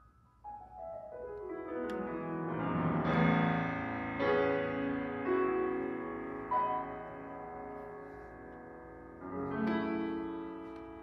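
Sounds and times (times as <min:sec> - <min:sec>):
grand piano chords: 0:00.0 - 0:11.0.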